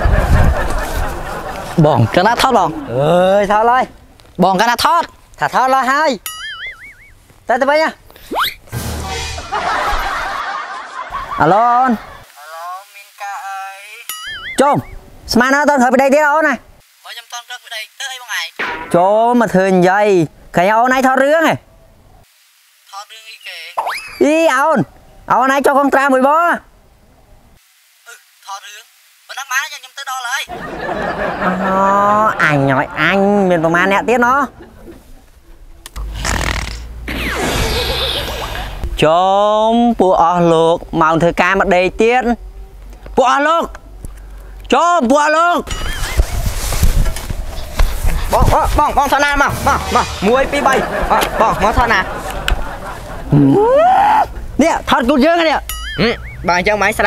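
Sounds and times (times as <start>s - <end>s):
canned laughter: 30.5s - 35.1s, 49.6s - 53.7s.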